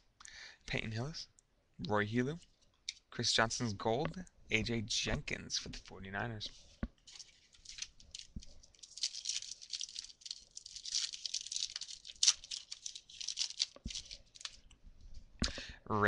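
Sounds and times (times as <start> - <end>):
foil wrapper crinkling: 7.1 - 14.7.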